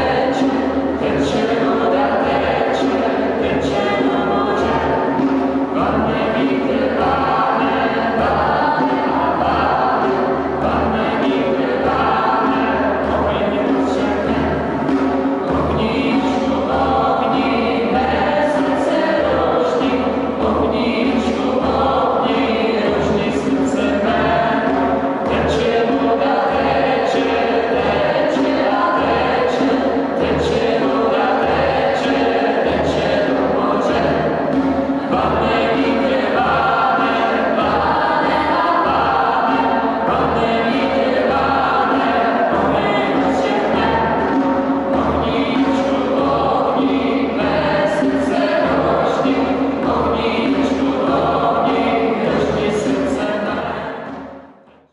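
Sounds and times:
group singing together: 0.0s - 54.9s.

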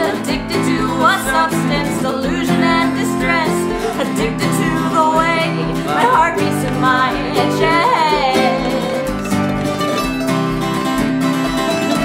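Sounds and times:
woman singing: 0.0s - 9.2s
acoustic guitar strumming: 0.0s - 12.0s
mandolin playing: 0.0s - 12.0s.

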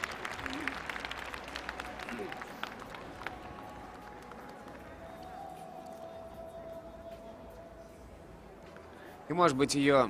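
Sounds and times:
hand claps: 0.0s - 5.3s.

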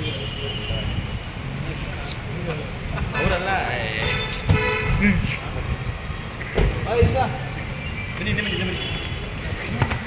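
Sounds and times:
people talking: 1.6s - 4.3s, 6.8s - 7.6s, 8.2s - 10.0s
vehicle horn: 4.0s - 5.0s.

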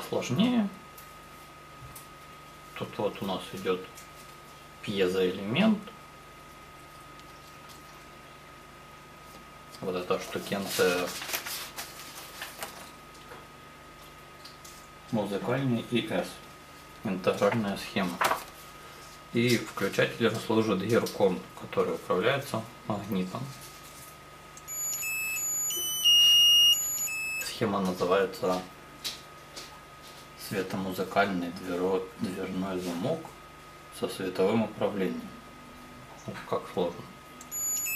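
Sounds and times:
low hum and hiss: 0.0s - 37.9s
high-pitched electronic tone: 24.6s - 27.6s, 37.4s - 37.9s.

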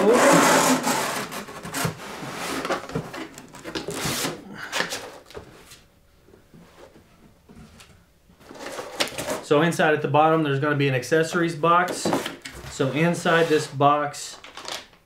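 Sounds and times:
cardboard scraping inside box: 0.0s - 5.2s, 8.4s - 9.4s, 12.1s - 13.8s.

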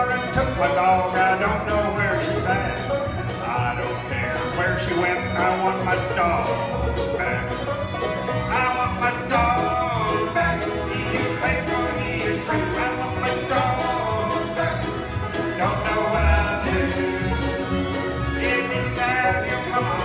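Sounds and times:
acoustic guitar: 0.0s - 20.0s
banjo: 0.0s - 20.0s
fiddle: 0.0s - 20.0s
mandolin: 0.0s - 20.0s
upright bass: 0.0s - 20.0s.

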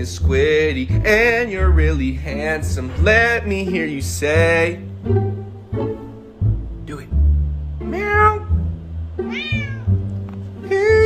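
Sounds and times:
plucked bass and cello music: 0.0s - 11.0s
cat meowing: 7.8s - 8.6s, 9.2s - 10.1s.

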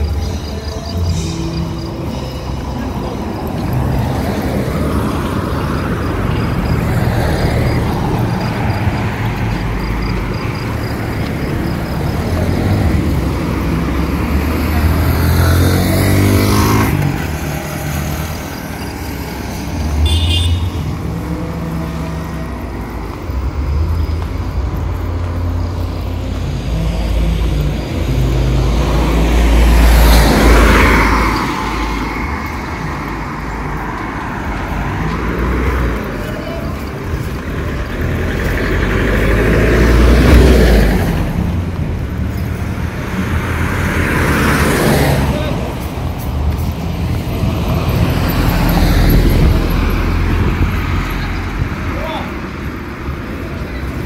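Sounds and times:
low traffic rumble: 0.0s - 54.0s
vehicles driving past: 0.0s - 54.0s.

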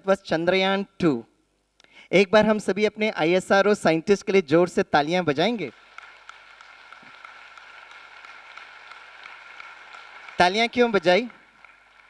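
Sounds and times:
lecturer speaking: 0.0s - 1.4s, 2.0s - 5.8s, 10.4s - 11.4s
audience clapping: 5.5s - 12.0s.

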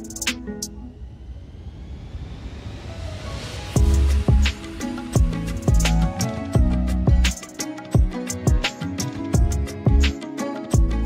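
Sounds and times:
music: 0.0s - 1.4s, 2.2s - 11.0s
low rumbling whoosh rising in pitch: 0.9s - 4.6s.

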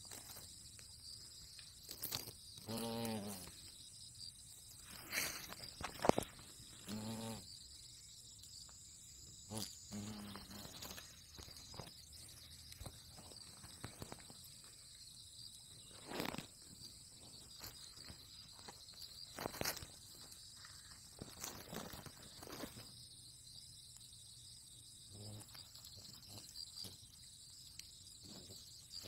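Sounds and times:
insect chorus: 0.0s - 29.0s
low buzzes: 5.6s - 8.2s, 9.0s - 13.3s.

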